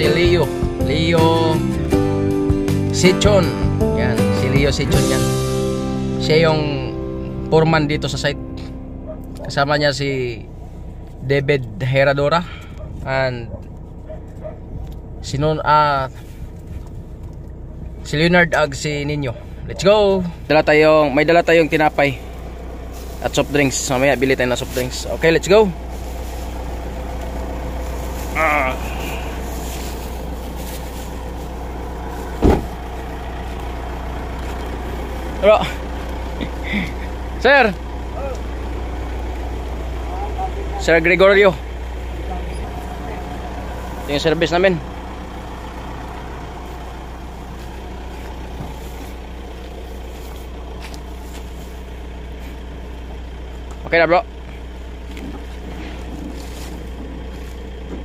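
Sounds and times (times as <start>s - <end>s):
vehicle engine idling: 0.0s - 58.0s
heavy thump: 32.3s - 32.8s.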